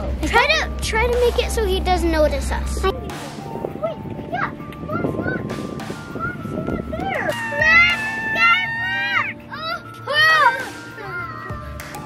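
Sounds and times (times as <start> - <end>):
children screaming: 7.0 - 11.8.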